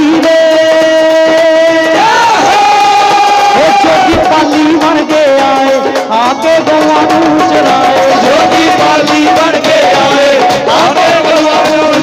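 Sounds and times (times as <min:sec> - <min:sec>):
live devotional band: 0:00.0 - 0:12.0.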